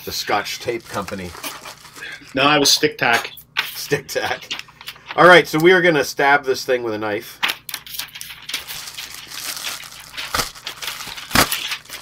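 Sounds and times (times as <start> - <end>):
packaging rustling and crinkling: 0.3 - 2.4, 7.8 - 12.0.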